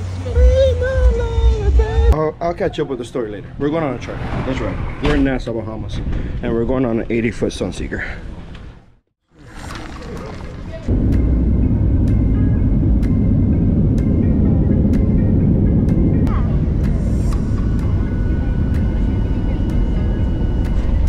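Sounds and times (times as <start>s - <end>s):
jet airliner cabin rumble: 10.9s - 21.0s
thin steady whine: 10.9s - 21.0s.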